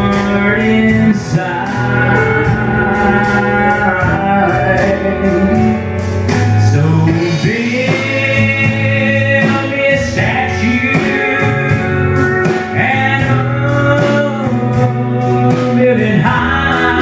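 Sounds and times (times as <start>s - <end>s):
man singing: 0.0s - 17.0s
pedal steel guitar: 0.0s - 17.0s.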